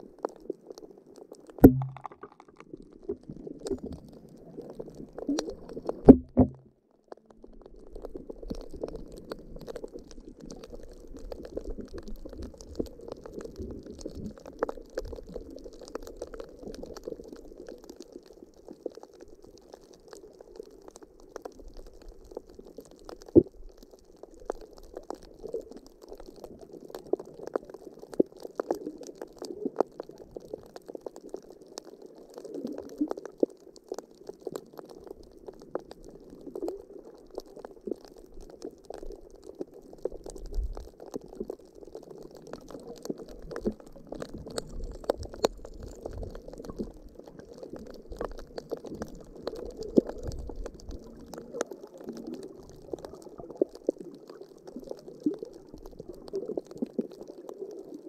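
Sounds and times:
faint crackling clicks: 0:00.0 - 0:58.0
sharp knock: 0:01.6 - 0:02.2.

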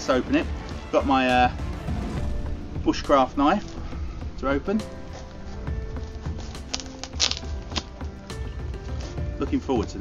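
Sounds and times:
knife cutting tape and cardboard: 0:06.2 - 0:08.0.

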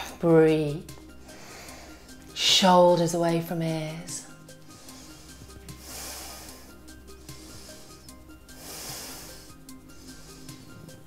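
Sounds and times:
soft background music: 0:00.0 - 0:11.0
person breathing: 0:01.2 - 0:02.3, 0:04.5 - 0:11.0.

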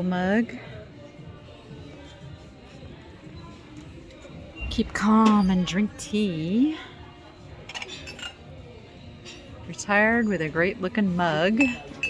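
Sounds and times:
faint store background noise: 0:00.0 - 0:12.0
ceramic mugs clinking: 0:11.5 - 0:12.0.

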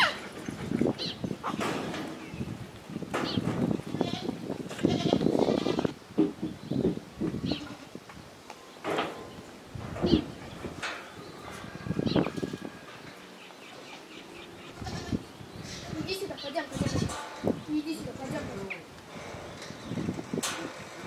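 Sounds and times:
goats bleating: 0:14.6 - 0:16.1.

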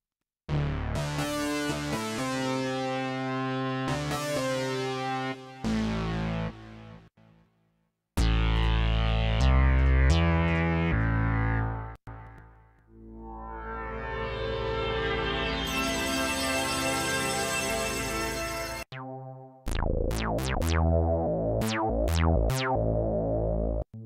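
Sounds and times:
synthesizer lead melody: 0:08.2 - 0:24.0
deep synthesizer phrase: 0:12.9 - 0:23.8
synthesizer tone swelling: 0:12.9 - 0:23.8.

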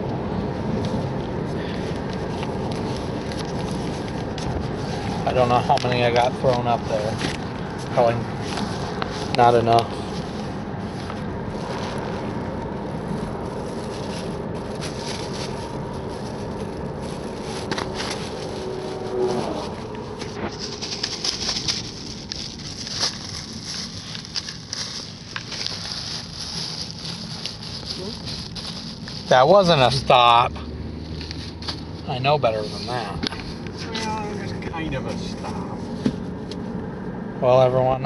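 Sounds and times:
car road and engine noise: 0:00.0 - 0:38.0
plastic bags rustling: 0:00.6 - 0:30.4, 0:31.0 - 0:36.4.

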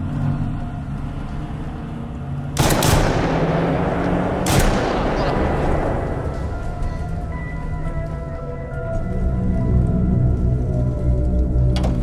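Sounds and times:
low steady drone: 0:00.0 - 0:12.0
gunfire crackle: 0:02.6 - 0:06.6.

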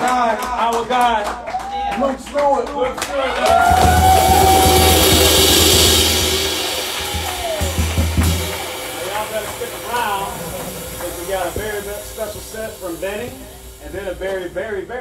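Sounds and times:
cymbal crash: 0:03.5 - 0:15.0
low drum rumble: 0:03.5 - 0:15.0
held tone: 0:03.7 - 0:14.6.

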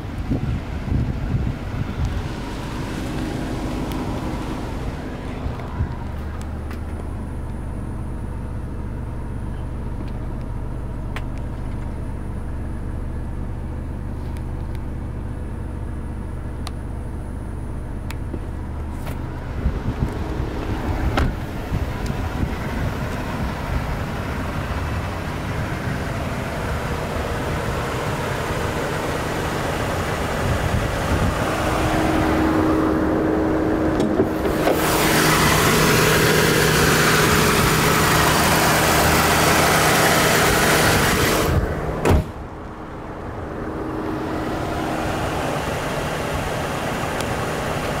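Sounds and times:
car engine running: 0:00.0 - 0:48.0.

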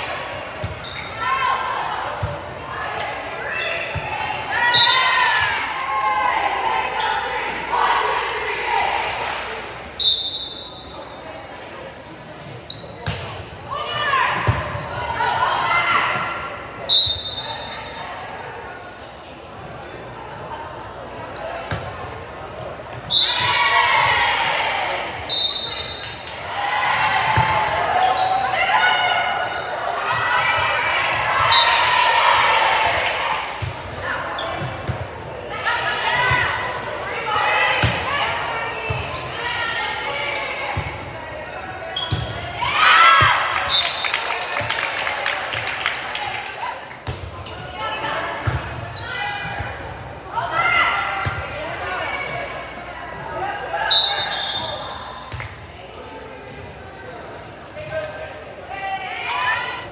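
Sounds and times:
voices shouting and cheering: 0:00.0 - 0:11.9, 0:13.5 - 0:19.0, 0:19.8 - 0:59.9
referee whistle blasts: 0:10.0 - 0:11.0, 0:16.8 - 0:17.8, 0:25.3 - 0:26.2, 0:53.8 - 0:55.1.

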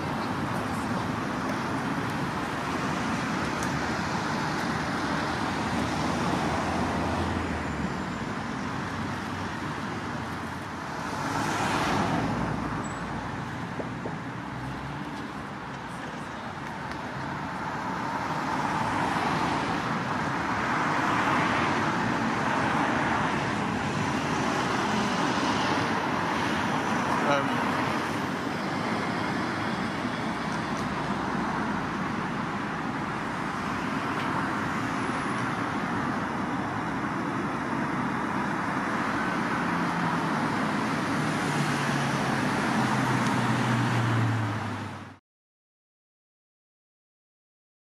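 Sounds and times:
vehicles passing on street: 0:00.0 - 0:45.2.

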